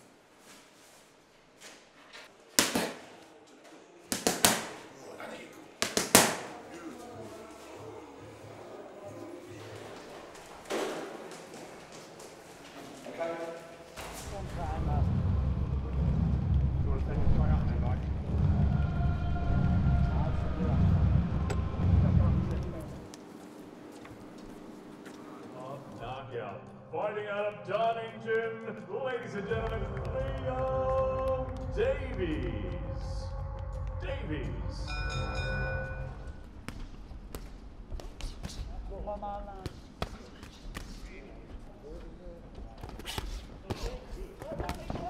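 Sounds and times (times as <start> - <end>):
gloved punches on focus mitts: 4.1 - 4.8, 5.8 - 6.5
deep pulsing bass: 14.4 - 23.0, 29.5 - 36.4.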